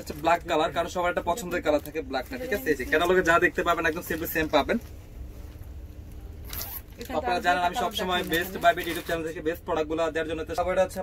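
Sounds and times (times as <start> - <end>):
plastic pack crinkling: 6.5 - 9.4.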